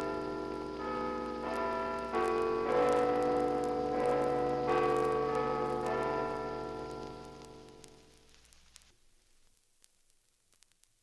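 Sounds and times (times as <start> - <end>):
large bells ringing: 0.0 - 7.8
record surface crackle: 0.0 - 11.0.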